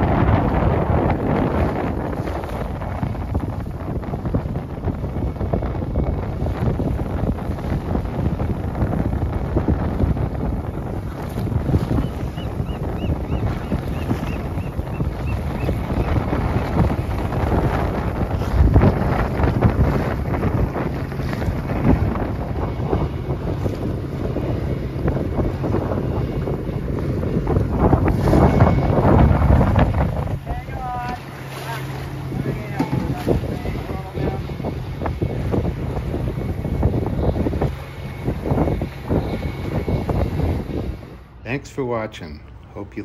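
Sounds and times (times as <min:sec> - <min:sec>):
choppy water splashing on hull: 0:00.0 - 0:41.5
wind buffeting microphone: 0:00.0 - 0:43.0.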